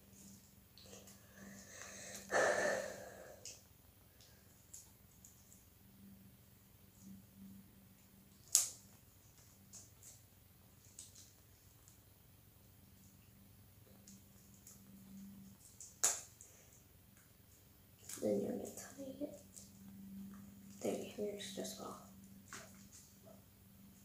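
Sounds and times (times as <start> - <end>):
sharp snaps of balloon rubber: 15.9 - 16.3.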